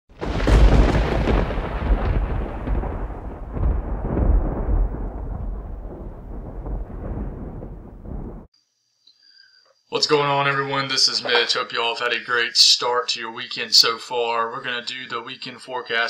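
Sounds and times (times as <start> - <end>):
thunder crack: 0.1 - 8.5
thunder rumbling: 0.1 - 8.5.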